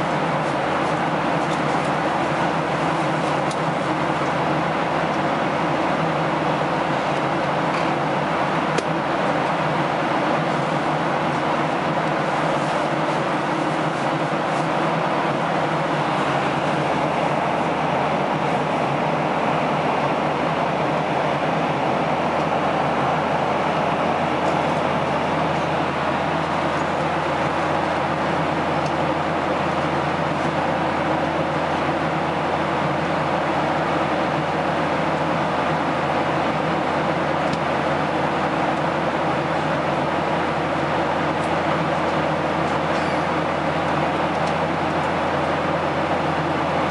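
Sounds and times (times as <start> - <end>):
jet airliner cabin noise: 0.0 - 46.9.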